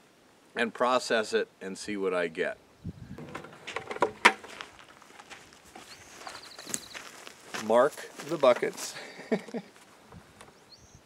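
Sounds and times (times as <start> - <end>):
plastic bucket knocks: 3.2 - 4.4
footsteps on rocky ground: 3.2 - 10.4.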